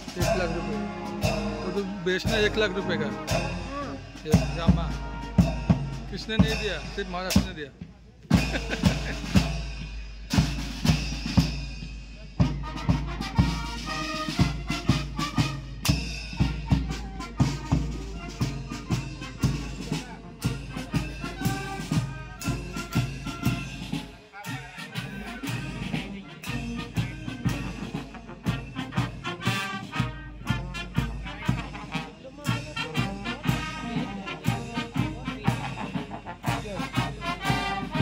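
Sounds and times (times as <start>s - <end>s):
brass band playing a march: 0.0s - 38.0s.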